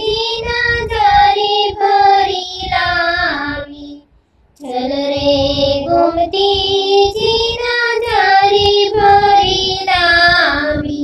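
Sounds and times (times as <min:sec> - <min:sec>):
high voice singing devotional song: 0:00.0 - 0:11.0.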